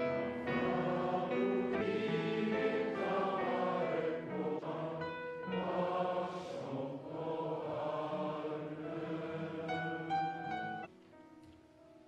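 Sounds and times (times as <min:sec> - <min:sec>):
choir singing long notes: 0:00.0 - 0:10.9.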